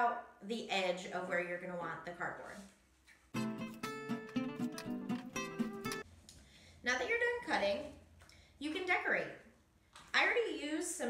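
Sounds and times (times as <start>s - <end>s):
acoustic guitar plucked notes: 3.3s - 6.0s.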